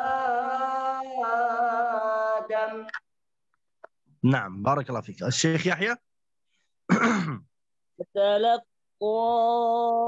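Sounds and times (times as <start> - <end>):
man clearing his throat: 6.9 - 7.5.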